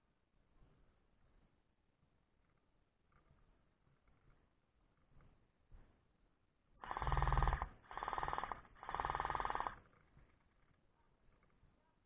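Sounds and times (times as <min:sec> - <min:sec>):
gel blaster full-auto bursts: 0:06.8 - 0:09.8.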